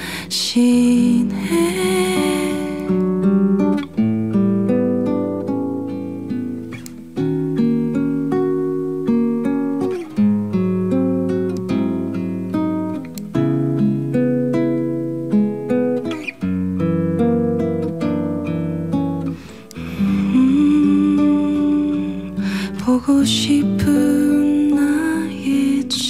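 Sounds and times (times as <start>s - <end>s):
classical guitar picking chords: 0.0s - 26.0s.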